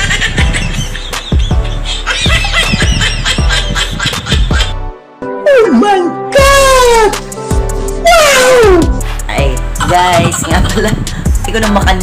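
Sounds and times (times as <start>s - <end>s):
background music: 0.0s - 12.0s
man crying out: 8.0s - 8.9s.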